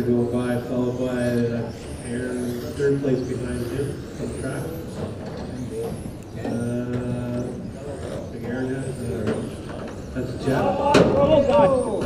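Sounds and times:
rc car motors whining: 0.0s - 12.0s.

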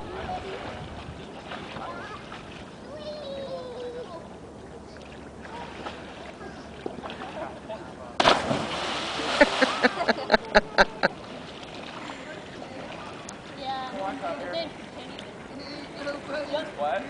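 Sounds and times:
loud splash into water: 8.2s - 10.0s.

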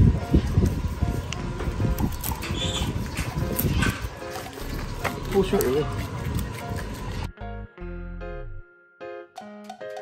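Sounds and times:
sheep eating grass: 0.0s - 7.3s.

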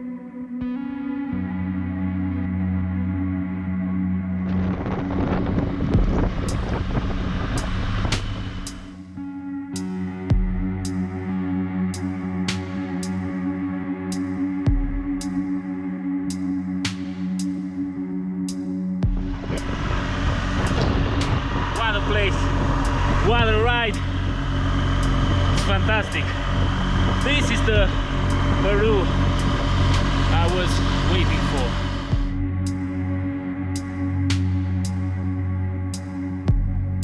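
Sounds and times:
background music: 0.0s - 37.0s
riding noise: 4.4s - 9.0s, 19.2s - 32.4s
rushing wind: 4.4s - 9.0s, 19.1s - 32.7s
motorcycle engine: 4.4s - 9.2s, 19.0s - 33.1s.

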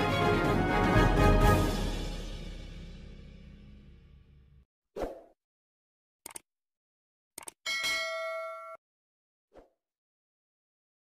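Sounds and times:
mouse double click: 6.2s - 6.4s
bright bell ding: 7.7s - 8.8s.

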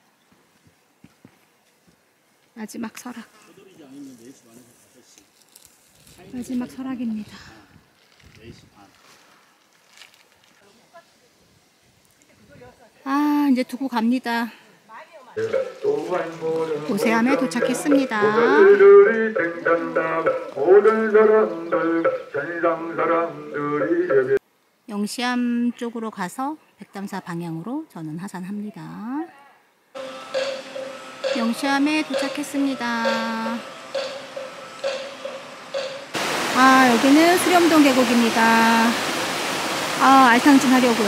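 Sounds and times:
person speaking: 15.4s - 20.6s, 31.3s - 33.6s
background music with sung vocals: 15.4s - 24.4s.

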